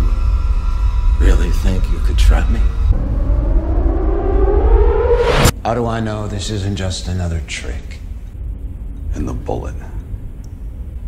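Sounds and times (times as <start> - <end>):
siren-like drone rising in pitch: 0.0 - 5.5
low rumble: 0.0 - 5.7.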